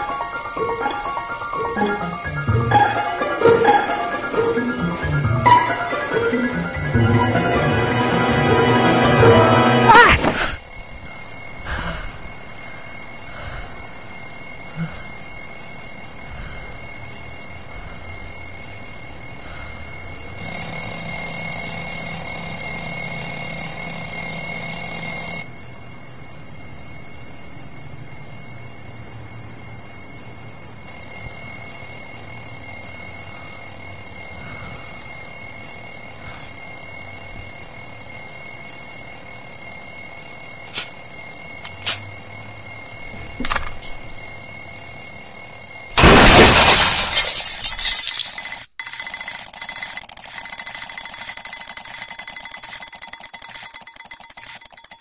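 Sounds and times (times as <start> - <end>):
alarm clock ringing: 0.0 - 46.0.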